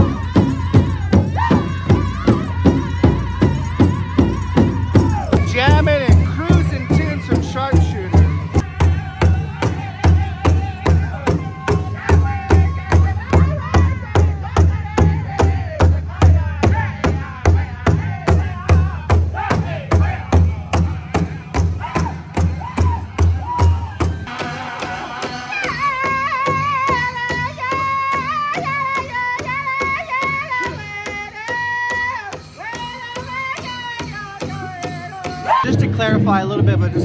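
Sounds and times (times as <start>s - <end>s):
high group singing: 0.0s - 23.0s, 24.3s - 32.0s
large drum steady beat: 0.0s - 37.0s.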